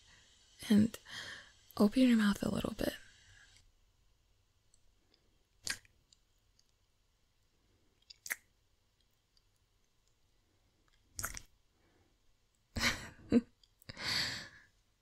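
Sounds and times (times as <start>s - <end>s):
wet kissing sounds: 5.6s - 5.9s, 8.1s - 8.5s, 11.2s - 11.5s
faint mouth clicks: 5.6s - 6.7s, 8.0s - 8.5s, 10.9s - 11.5s.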